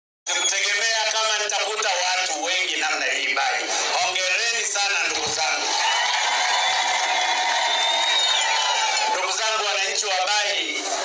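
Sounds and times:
crowd cheering and whistling: 0:00.3 - 0:00.9, 0:05.6 - 0:09.8.

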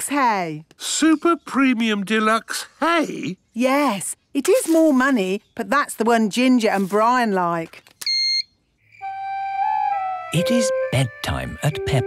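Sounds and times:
payment terminal beep: 0:08.1 - 0:09.2
soft flute music over a drone: 0:09.0 - 0:12.0.

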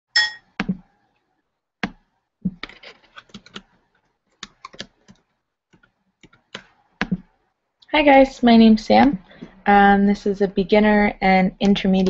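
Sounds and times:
short ringing ding: 0:00.2 - 0:00.4.

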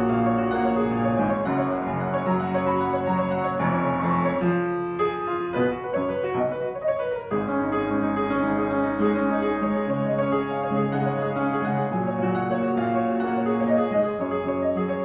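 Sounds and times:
upright piano playing chords: 0:00.0 - 0:15.0.

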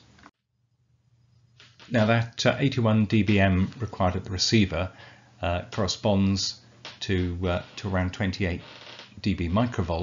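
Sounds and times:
man speaking: 0:01.8 - 0:10.0.

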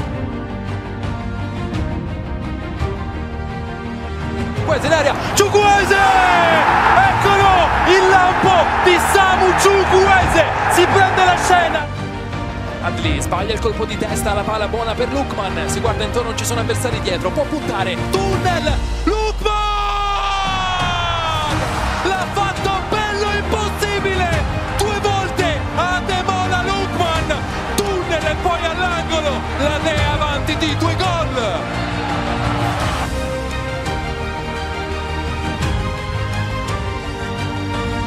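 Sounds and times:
background music: 0:00.0 - 0:38.0
commentator shouting excitedly: 0:04.7 - 0:11.9, 0:18.1 - 0:31.6
stadium crowd noise: 0:04.8 - 0:11.9, 0:19.6 - 0:33.3.

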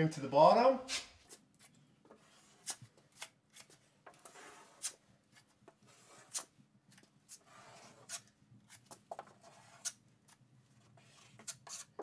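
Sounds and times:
taping knife scraping drywall: 0:00.9 - 0:12.0.

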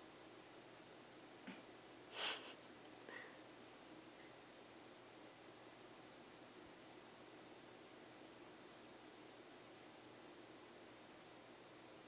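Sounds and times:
person sniffing: 0:02.1 - 0:02.6.

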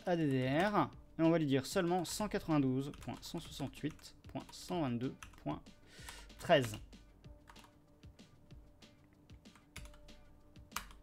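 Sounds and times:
computer keyboard keystrokes: 0:09.5 - 0:10.0, 0:10.7 - 0:11.0.

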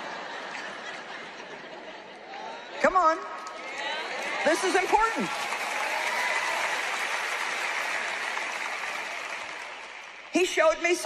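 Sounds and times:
audience applauding: 0:03.5 - 0:10.6.

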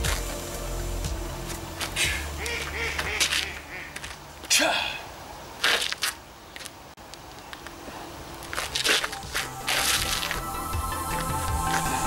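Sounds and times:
ducks quacking: 0:02.0 - 0:04.2.

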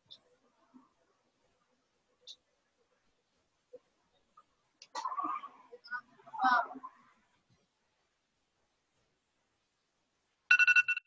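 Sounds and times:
timer alarm pulsing beep: 0:10.5 - 0:11.0.

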